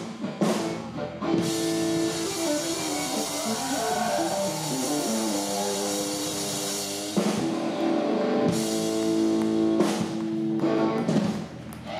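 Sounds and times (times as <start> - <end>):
electric guitar melody: 0.0 - 11.4
live band music: 0.0 - 11.6.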